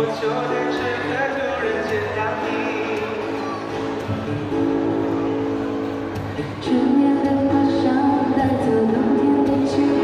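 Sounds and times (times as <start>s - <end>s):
person singing: 6.4s - 10.0s.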